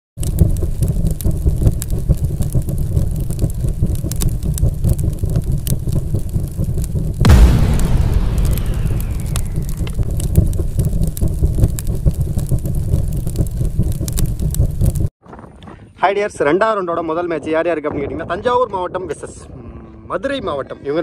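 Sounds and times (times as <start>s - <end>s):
low rumble: 0.2s - 15.1s
crackling fire: 0.2s - 15.2s
falling whoosh: 7.2s - 10.4s
big explosion hit: 7.2s - 12.5s.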